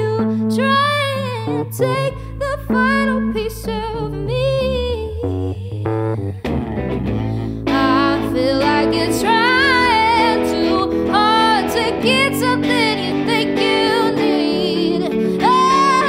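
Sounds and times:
soul-pop band with electric guitar: 0:06.5 - 0:16.0.

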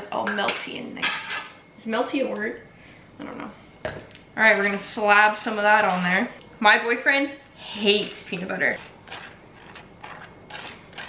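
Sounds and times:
knife scraping toast: 0:08.0 - 0:11.0.

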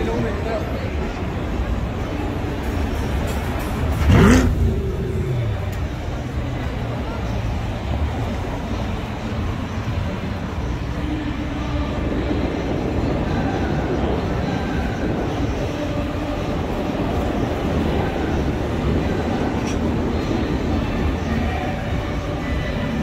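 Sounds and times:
road traffic: 0:00.0 - 0:23.0
vehicle passing close: 0:03.4 - 0:06.8.

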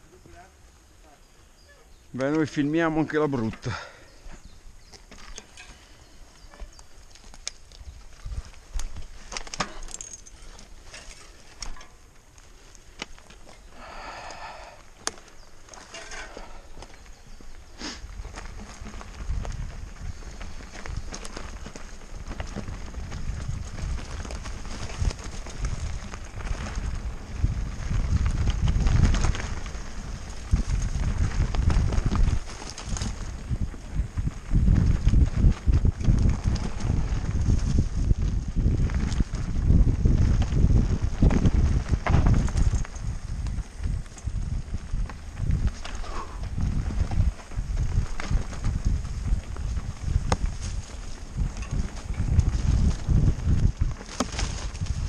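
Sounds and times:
bike tyres rumbling on dirt: 0:01.6 - 0:55.0
bike rattling over roots: 0:02.2 - 0:55.0
wind on microphone: 0:13.6 - 0:55.0.

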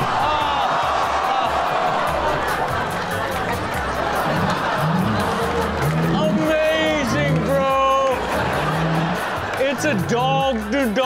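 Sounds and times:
men yelling and laughing: 0:00.0 - 0:03.0, 0:04.0 - 0:11.0
background music: 0:00.0 - 0:11.0.

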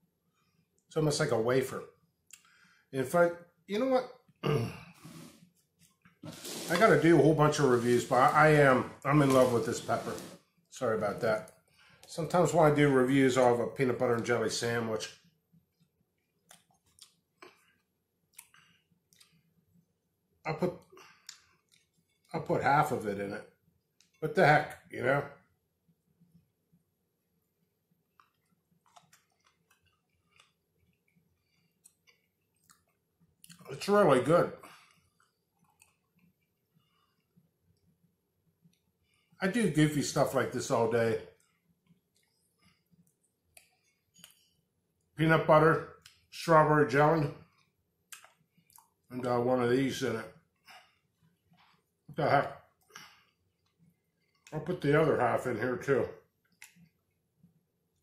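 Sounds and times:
soft squish: 0:05.1 - 0:12.8, 0:15.7 - 0:19.6, 0:21.1 - 0:22.5, 0:28.1 - 0:34.0, 0:34.7 - 0:39.4, 0:41.2 - 0:45.1, 0:47.3 - 0:49.1, 0:50.4 - 0:54.7, 0:56.3 - 0:58.0
faint chewing: 0:15.7 - 0:19.8, 0:20.8 - 0:22.4, 0:28.1 - 0:33.8, 0:34.6 - 0:39.4, 0:41.3 - 0:45.2, 0:45.9 - 0:46.3, 0:47.3 - 0:49.1, 0:50.3 - 0:54.7, 0:56.3 - 0:58.0.

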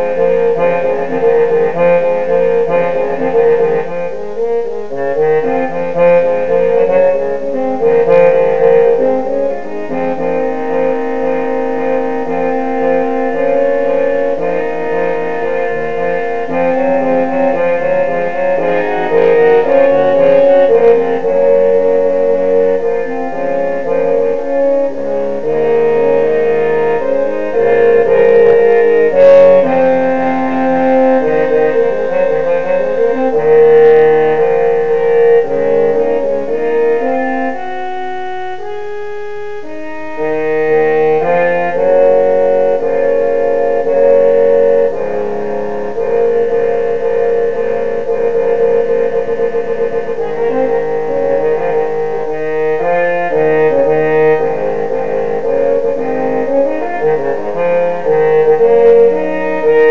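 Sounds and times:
trombone playing held notes: 0:00.0 - 0:59.9.

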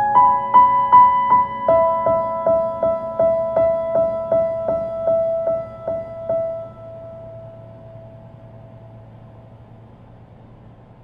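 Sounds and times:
piano note ringing: 0:00.0 - 0:10.2
faint low hum and hiss: 0:00.0 - 0:11.0.

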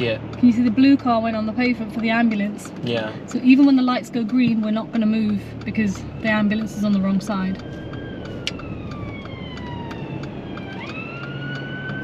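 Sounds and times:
ambulance siren wailing: 0:04.4 - 0:12.0.

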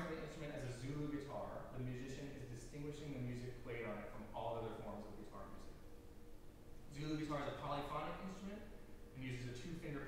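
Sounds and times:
man lecturing: 0:00.0 - 0:05.8, 0:06.9 - 0:10.0.

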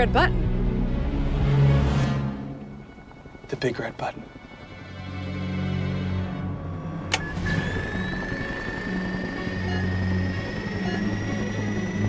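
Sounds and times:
film score with low held notes: 0:00.0 - 0:12.0
high electronic whine rising: 0:06.8 - 0:12.0.

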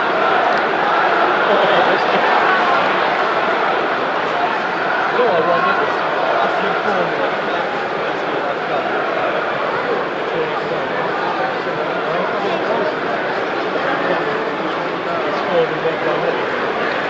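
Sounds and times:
stadium crowd voices: 0:00.0 - 0:17.0.

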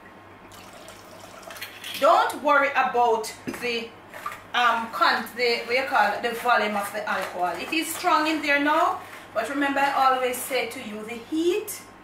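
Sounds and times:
liquid trickling from bottle: 0:00.5 - 0:01.9.

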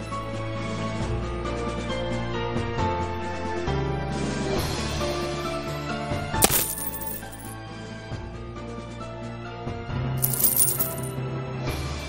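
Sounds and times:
coins jingling on a counter: 0:06.4 - 0:07.6, 0:10.2 - 0:11.1.

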